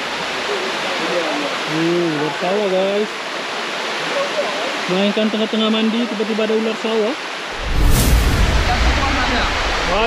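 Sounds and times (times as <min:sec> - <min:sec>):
waterfall pouring into pool: 0:00.0 - 0:07.2, 0:08.0 - 0:10.0
brief hissing burst: 0:07.6 - 0:09.0
deep rumble on microphone: 0:07.6 - 0:10.0.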